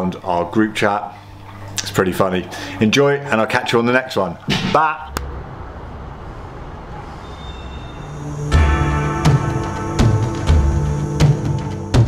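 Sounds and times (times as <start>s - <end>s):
city traffic rumble: 5.0s - 10.4s.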